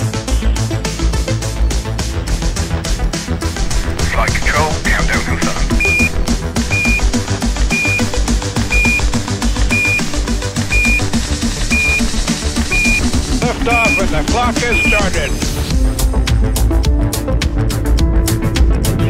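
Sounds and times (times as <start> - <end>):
background music with beat: 5.3 - 19.0
high electronic timer beeps: 5.8 - 7.1, 7.7 - 8.1, 8.7 - 9.1, 9.7 - 10.1, 10.7 - 11.1, 11.7 - 12.1, 12.7 - 13.1, 13.7 - 15.1.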